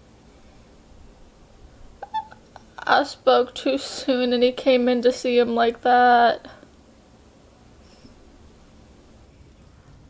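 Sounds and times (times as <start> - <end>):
woman speaking: 2.0 - 6.6.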